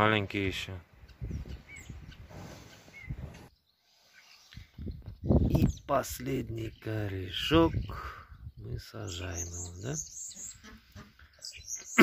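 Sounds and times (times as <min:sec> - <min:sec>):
faint bird chirps: 0:01.0 - 0:12.0
hands scraping dry soil: 0:02.3 - 0:04.7.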